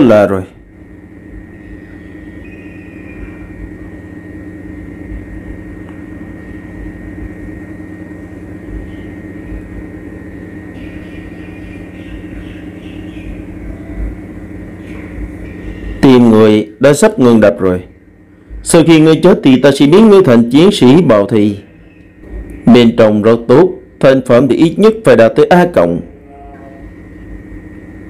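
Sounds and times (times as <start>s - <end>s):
low droning hum: 0.0s - 28.0s
thin high tone: 26.0s - 27.2s.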